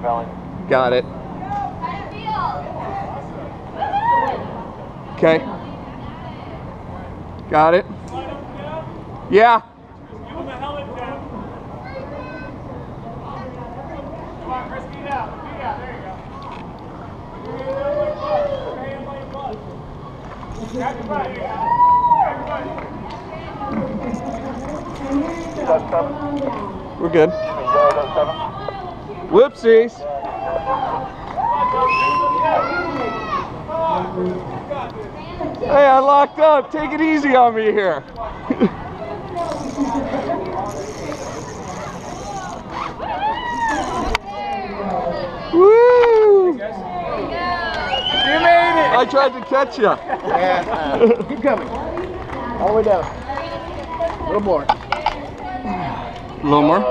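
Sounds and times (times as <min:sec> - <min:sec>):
steady background noise: 0:00.0 - 0:56.9
faint voices: 0:09.8 - 0:56.9.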